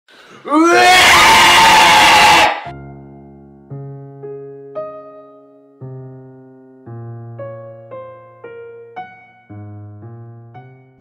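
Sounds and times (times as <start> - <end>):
loud excited scream: 0.4 - 2.7
piano chords: 2.7 - 11.0.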